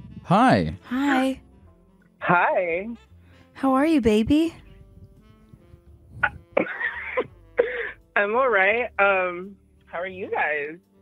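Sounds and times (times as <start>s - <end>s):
woman coughing over phone line: 6.2s - 8.0s.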